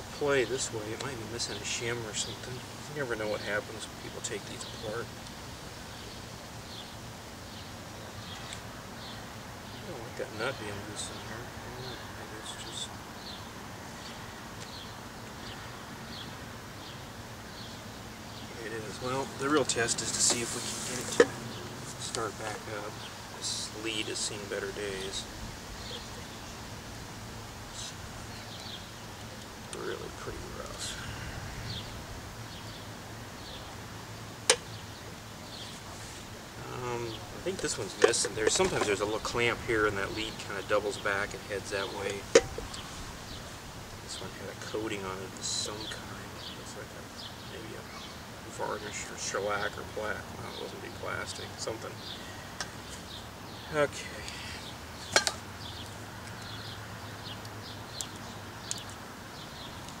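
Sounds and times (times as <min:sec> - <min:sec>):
birds chirping: 0:00.0 - 1:00.0.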